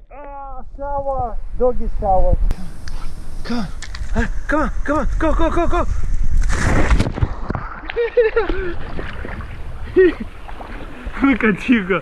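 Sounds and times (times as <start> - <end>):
pool water sloshing and churning: 7.3 - 12.0.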